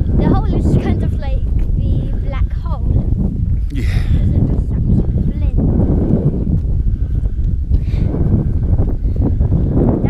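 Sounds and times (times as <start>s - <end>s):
wind rumbling on microphone: 0.0s - 10.0s
footsteps on grassy stony track: 0.4s - 9.9s.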